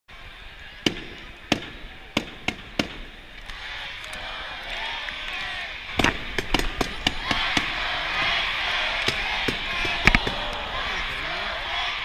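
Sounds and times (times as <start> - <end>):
hockey crowd din: 0.1 - 12.0.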